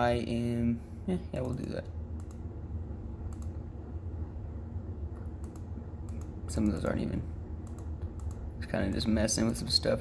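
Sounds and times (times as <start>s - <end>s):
steady low hum: 0.0s - 10.0s
touchscreen typing clicks: 3.3s - 3.6s, 5.4s - 6.3s, 7.6s - 9.1s.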